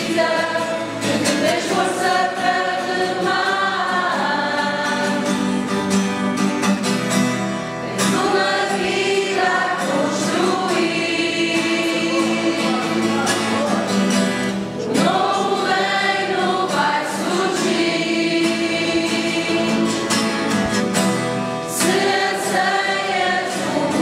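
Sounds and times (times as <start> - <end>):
group singing a hymn: 0.0 - 6.2, 7.6 - 24.0.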